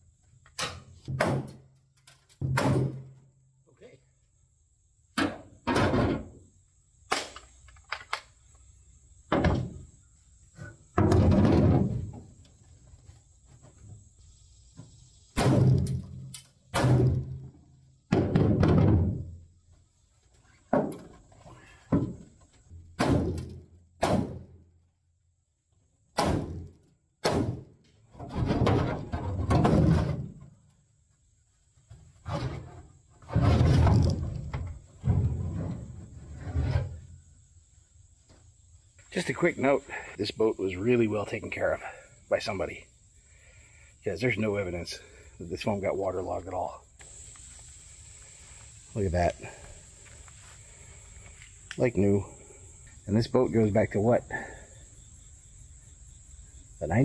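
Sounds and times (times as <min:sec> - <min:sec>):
hollow metal bangs and thunks: 0:00.6 - 0:01.7, 0:02.4 - 0:03.3, 0:05.2 - 0:06.4, 0:09.3 - 0:09.9, 0:10.6 - 0:12.4, 0:15.3 - 0:19.4, 0:20.7 - 0:24.6, 0:26.2 - 0:30.6, 0:32.2 - 0:37.0.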